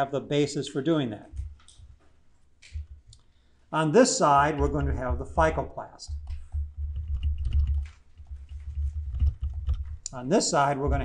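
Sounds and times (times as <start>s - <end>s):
steady low rumble: 4.6s - 10.1s
stylus tapping on tablet screen: 6.1s - 10.1s.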